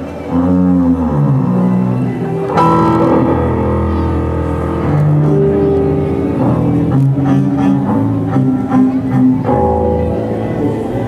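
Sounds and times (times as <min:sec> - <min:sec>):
low bass line: 0:00.0 - 0:11.0.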